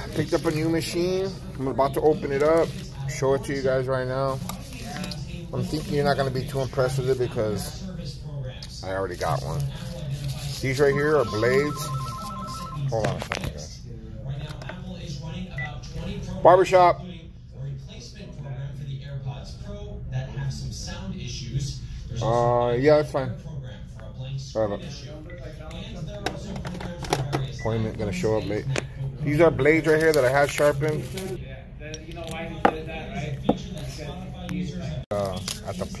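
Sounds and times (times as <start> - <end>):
short electronic beep: 10.9 - 12.8.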